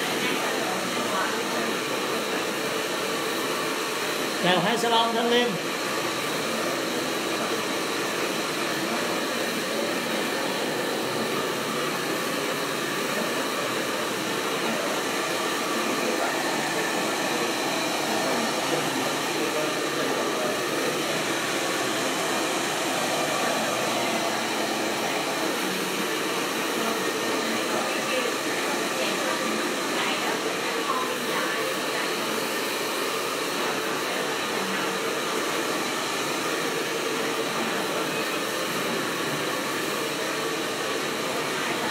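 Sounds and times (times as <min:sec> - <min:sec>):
hair dryer running: 0:00.0 - 0:41.9.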